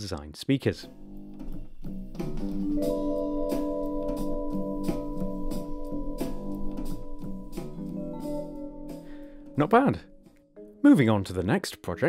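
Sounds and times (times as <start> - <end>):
music with steady beat: 1.0 - 10.8.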